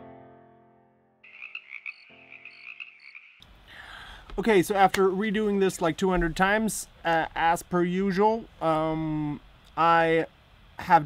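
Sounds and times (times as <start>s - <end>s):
piano chord: 0.0s - 1.2s.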